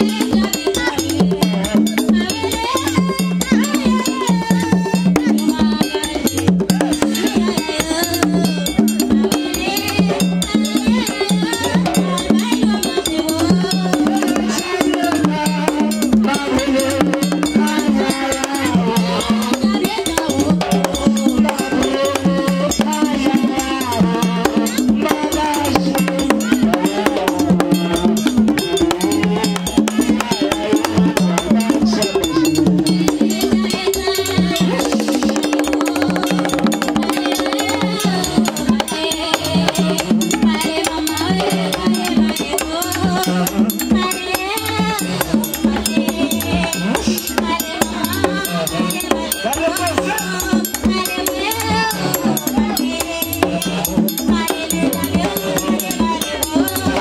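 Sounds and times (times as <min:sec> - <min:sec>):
drums beating: 0:00.0 - 0:57.0
voices singing a chant: 0:00.0 - 0:57.0.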